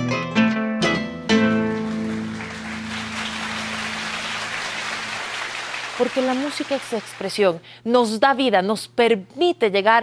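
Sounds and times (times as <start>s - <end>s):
applause: 1.5s - 7.5s.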